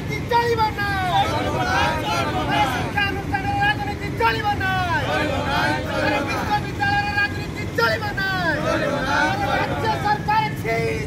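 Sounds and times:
men chanting slogans: 0.0 - 11.0.

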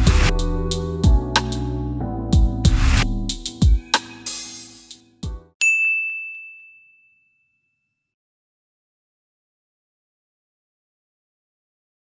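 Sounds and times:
outro music: 0.0 - 5.5
high bell-like ding: 3.8 - 4.8, 5.6 - 8.1.

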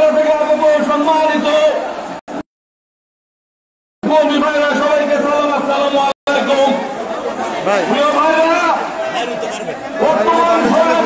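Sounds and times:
people talking over one another: 0.0 - 2.4, 4.0 - 11.0.

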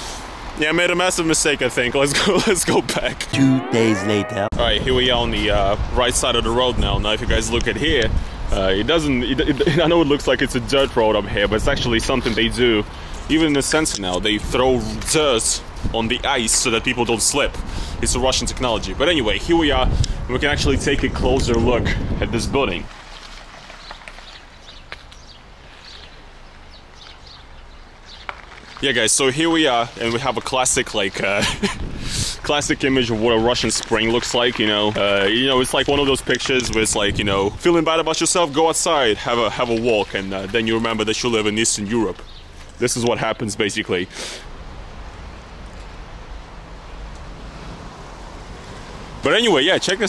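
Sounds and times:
wind blowing across microphone: 4.5 - 10.0, 10.6 - 22.9, 31.4 - 37.9
footsteps on slushy pavement: 22.8 - 25.6, 26.2 - 31.1, 33.0 - 36.9.

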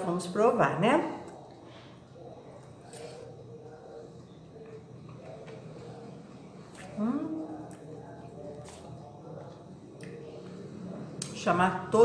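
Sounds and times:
faint mouth sounds: 1.3 - 11.4
person chewing pasta: 1.3 - 11.4.

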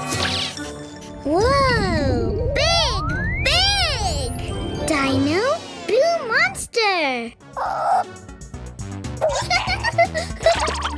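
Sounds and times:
cartoon creature whining: 7.6 - 8.1.

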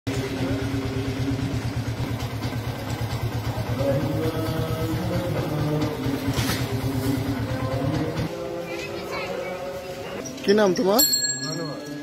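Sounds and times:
small engine idling: 0.1 - 10.8.

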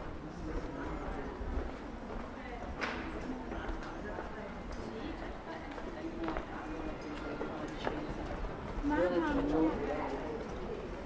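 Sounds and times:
footsteps on stone pavement: 0.0 - 11.0
indistinct chatter: 0.0 - 11.0.

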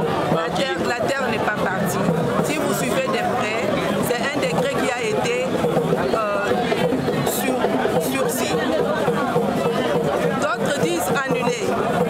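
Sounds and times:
people talking at once: 0.0 - 12.0.

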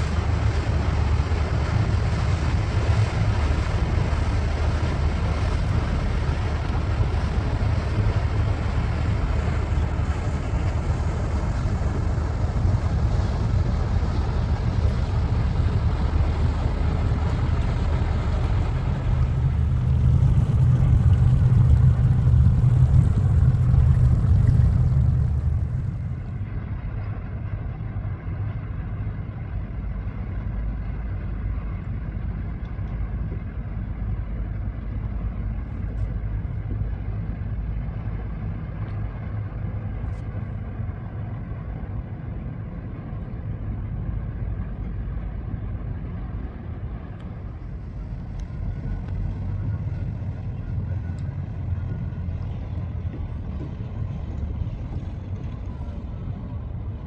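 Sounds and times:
engine drone: 0.0 - 57.0.

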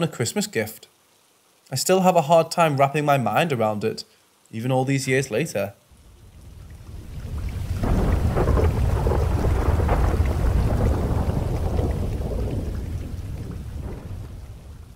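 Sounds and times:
rain: 0.0 - 14.9
thunder rumbling: 6.1 - 14.9.

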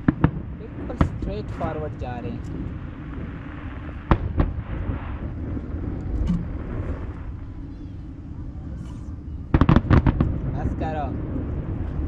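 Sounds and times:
firework bangs: 0.0 - 8.2, 9.1 - 12.0
low background rumble: 0.0 - 12.0.

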